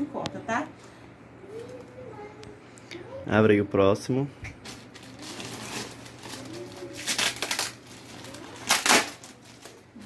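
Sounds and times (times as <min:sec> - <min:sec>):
plastic bag tearing and rustling: 0:04.6 - 0:10.0.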